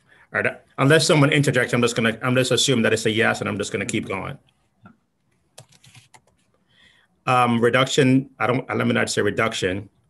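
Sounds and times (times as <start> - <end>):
computer keyboard typing: 5.5 - 6.5.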